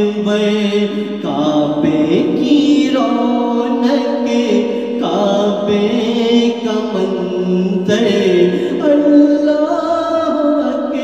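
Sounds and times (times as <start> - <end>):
voices chanting devotional song: 0.0 - 11.0.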